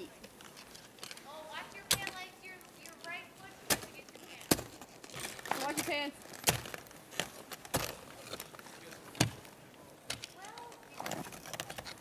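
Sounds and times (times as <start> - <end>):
ice tools chopping into ice: 1.8 - 2.2, 3.5 - 9.5.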